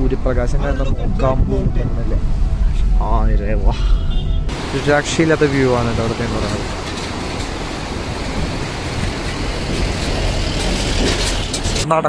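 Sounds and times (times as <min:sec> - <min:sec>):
stream rushing over rocks: 0:04.5 - 0:11.8.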